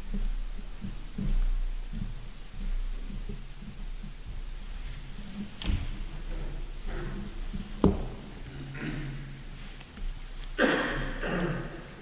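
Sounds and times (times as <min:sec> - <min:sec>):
footsteps on wooden floor: 0:00.0 - 0:08.6
steady low hum: 0:00.0 - 0:12.0.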